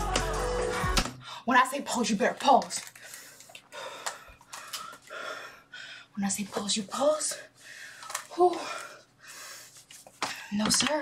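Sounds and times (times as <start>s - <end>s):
woman panting: 3.0s - 6.2s, 7.1s - 10.7s.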